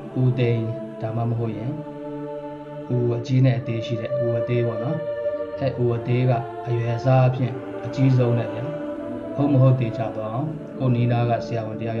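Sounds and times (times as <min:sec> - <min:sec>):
man chanting: 0:00.0 - 0:02.1, 0:02.7 - 0:12.0
faint background music: 0:00.0 - 0:12.0.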